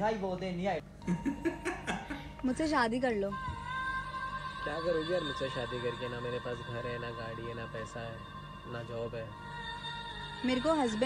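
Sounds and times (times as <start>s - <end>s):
steady background tones: 0.0s - 11.0s.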